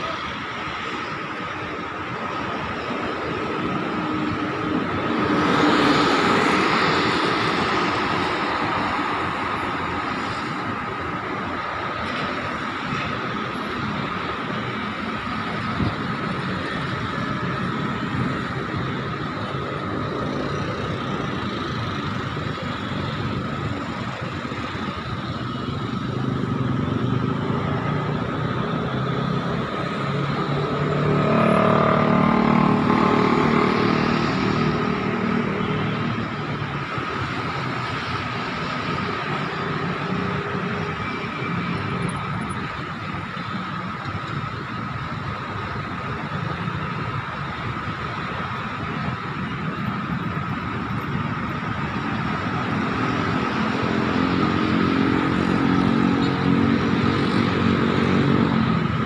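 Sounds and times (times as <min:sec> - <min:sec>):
dense city traffic: 0:00.0 - 0:59.0.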